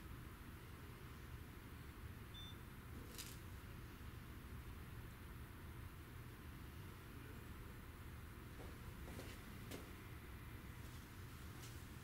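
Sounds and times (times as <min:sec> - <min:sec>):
low steady hum: 0:00.0 - 0:12.0
short high beep: 0:02.4 - 0:02.6.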